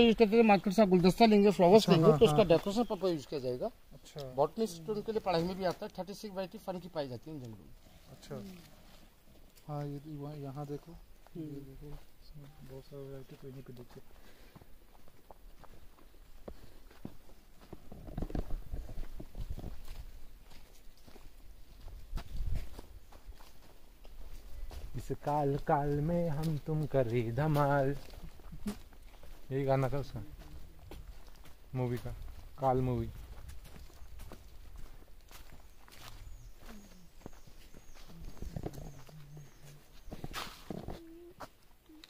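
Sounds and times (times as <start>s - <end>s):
bird chirping: 0.0s - 6.7s, 35.4s - 41.3s
footsteps crunching on leafy trail: 0.0s - 42.0s
leaves rustling: 0.0s - 42.0s.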